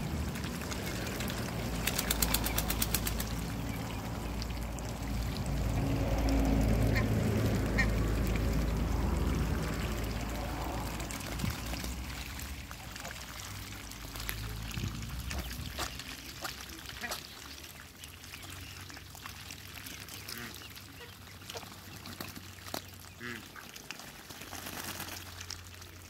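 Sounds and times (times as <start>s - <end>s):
low rumble: 0.0s - 15.8s
ducks splashing in water: 0.0s - 26.0s
ducks quacking: 6.3s - 8.5s, 15.2s - 17.6s, 20.1s - 21.8s, 23.1s - 23.8s.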